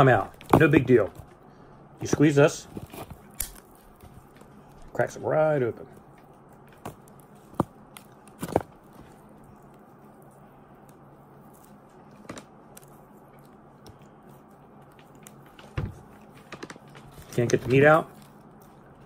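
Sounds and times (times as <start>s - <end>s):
faint low hum: 0.0s - 19.0s
crab shell cracking: 2.7s - 4.9s, 5.9s - 10.2s.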